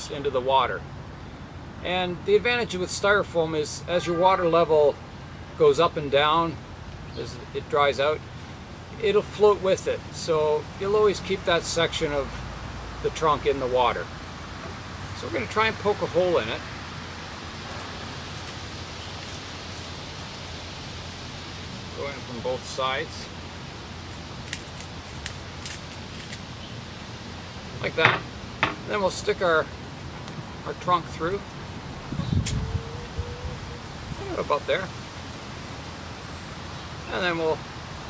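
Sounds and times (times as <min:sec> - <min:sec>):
outdoor background hiss: 0:00.0 - 0:38.0.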